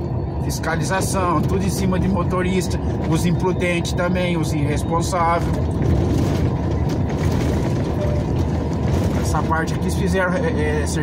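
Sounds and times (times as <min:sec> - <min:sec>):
truck engine drone: 0:00.0 - 0:11.0
tyres on road: 0:00.0 - 0:11.0.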